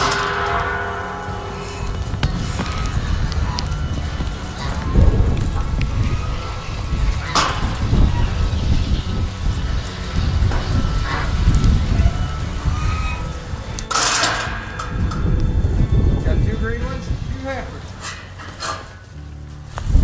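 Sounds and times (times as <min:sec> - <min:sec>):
wavering calls: 0:00.0 - 0:19.4
rain: 0:00.0 - 0:20.0
wind rumble on microphone: 0:00.0 - 0:20.0.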